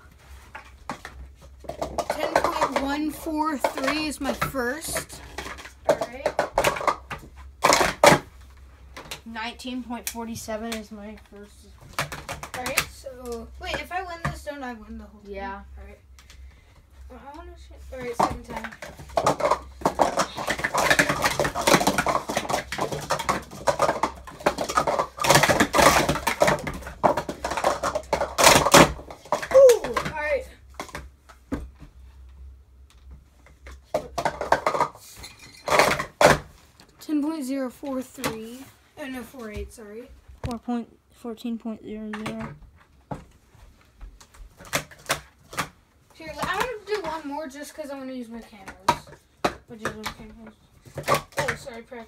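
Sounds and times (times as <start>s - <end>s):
plastic cups clattering: 0.3s - 9.3s, 11.8s - 14.5s, 17.9s - 31.7s, 33.4s - 36.7s, 44.2s - 52.0s
person speaking: 2.1s - 5.3s.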